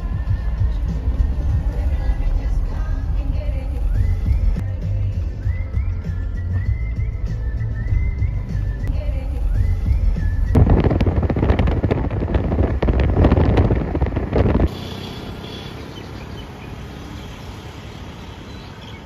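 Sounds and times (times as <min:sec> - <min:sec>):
road rumble inside car: 0:00.0 - 0:14.8
street traffic: 0:00.0 - 0:19.0
wind rushing through car window: 0:09.5 - 0:14.8.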